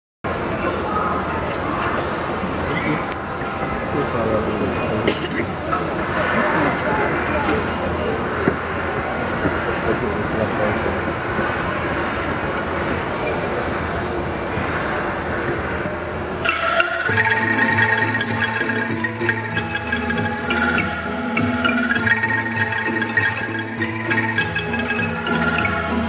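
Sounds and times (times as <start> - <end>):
crowd chatter: 0.3 - 26.0.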